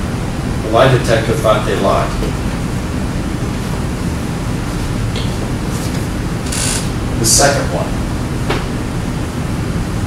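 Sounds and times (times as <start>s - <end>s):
classroom room hum with hiss: 0.0s - 10.0s.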